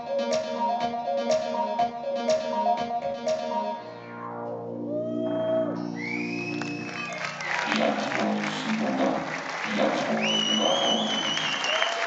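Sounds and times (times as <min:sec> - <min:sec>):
staccato synth pattern: 0:00.0 - 0:04.8
sustained synth drone: 0:03.7 - 0:07.0.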